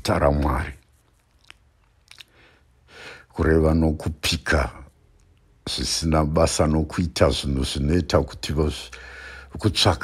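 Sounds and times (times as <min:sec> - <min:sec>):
man preaching: 0:00.0 - 0:00.8, 0:03.2 - 0:04.9, 0:05.7 - 0:10.0
faint mouth click: 0:01.3 - 0:02.4.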